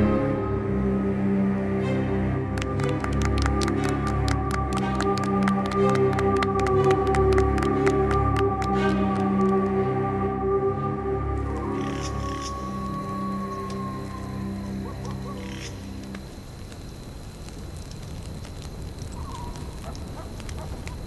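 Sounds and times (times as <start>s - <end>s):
music drone of held tones: 0.0s - 17.0s
wood fire crackling: 2.5s - 9.7s, 11.5s - 21.0s
faint steady high tone: 11.3s - 17.4s.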